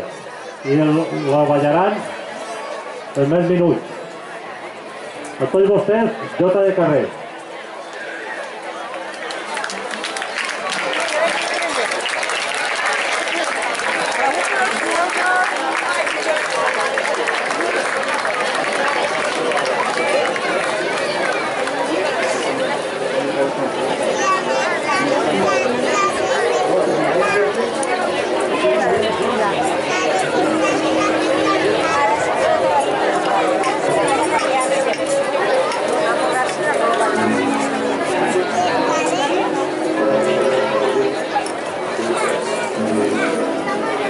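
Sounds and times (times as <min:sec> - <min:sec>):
crowd chatter: 0:00.0 - 0:44.0
held musical notes: 0:24.3 - 0:44.0.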